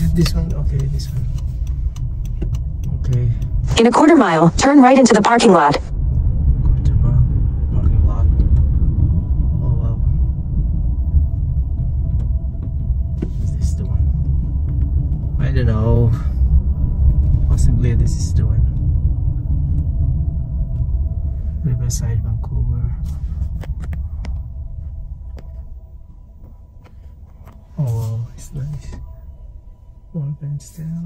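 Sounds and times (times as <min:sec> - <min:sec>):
car driving rumble from inside: 0:00.0 - 0:04.7, 0:05.9 - 0:31.0.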